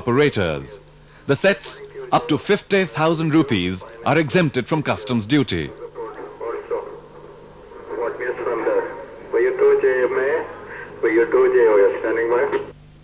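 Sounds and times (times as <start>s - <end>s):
voice over radio speaker: 0.0s - 12.8s
low hum: 0.0s - 13.0s.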